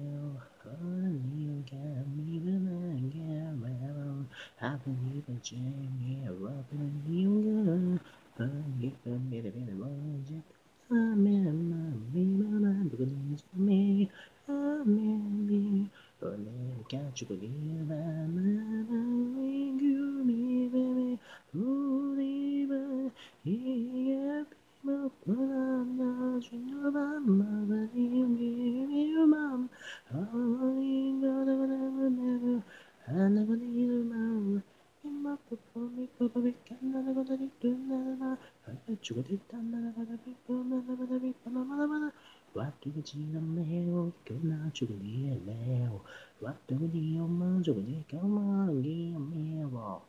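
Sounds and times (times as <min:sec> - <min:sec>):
woman singing pop vocal: 0:00.0 - 0:50.0.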